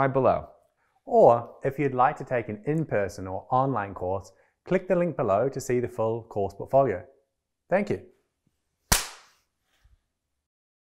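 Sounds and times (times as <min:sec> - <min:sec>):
sharp crack: 0:08.9 - 0:09.4.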